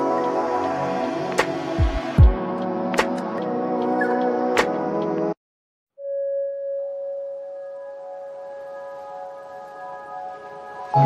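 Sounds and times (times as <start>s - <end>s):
ambient music held tones: 0.0s - 5.4s, 6.0s - 11.0s.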